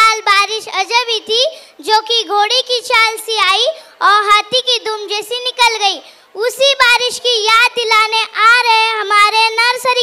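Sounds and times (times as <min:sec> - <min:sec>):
boy announcing over a microphone: 0:00.0 - 0:10.0.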